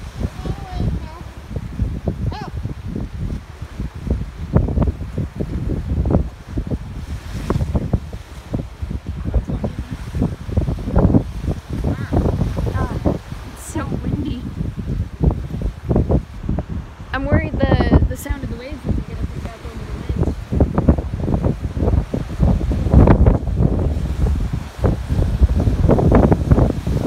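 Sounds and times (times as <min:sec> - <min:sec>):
sea washing against rocks: 0:00.0 - 0:27.0
wind buffeting microphone: 0:00.0 - 0:27.0.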